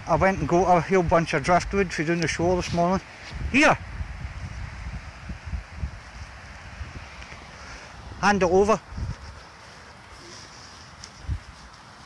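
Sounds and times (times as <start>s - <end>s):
faint hiss: 0.0s - 12.0s
wind buffeting microphone: 0.0s - 12.0s.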